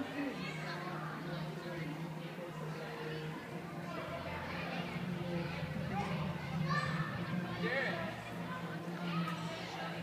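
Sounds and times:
children calling: 2.7s - 10.0s.

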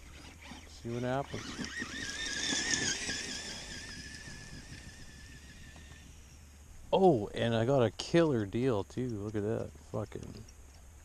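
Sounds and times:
electric motor and gears whining: 0.0s - 6.5s.

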